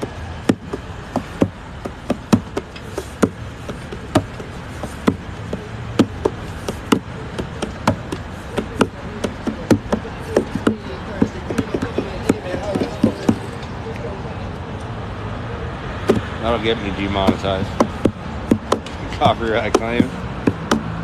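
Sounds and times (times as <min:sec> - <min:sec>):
street noise: 0:00.0 - 0:21.0.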